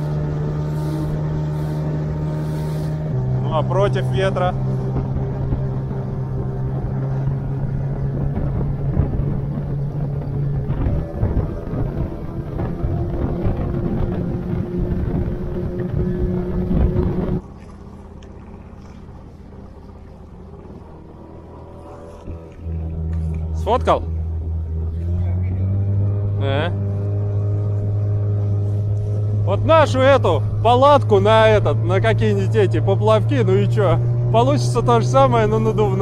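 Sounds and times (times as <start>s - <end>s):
rushing water: 0.0s - 23.6s
low hum: 0.0s - 36.0s
outboard motor: 0.0s - 36.0s
wind: 0.0s - 36.0s.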